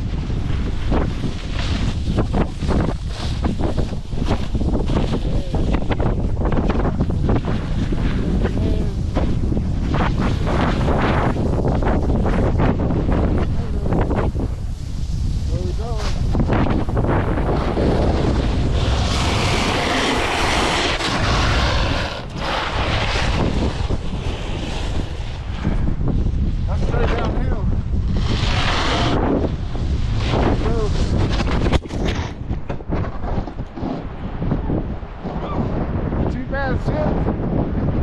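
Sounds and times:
snowboard edge scraping snow: 0:00.0 - 0:35.4
wind buffeting microphone: 0:00.0 - 0:38.0.

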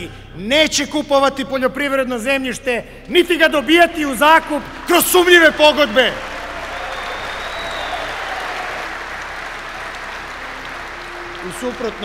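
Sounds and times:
audience applauding: 0:03.7 - 0:12.0.

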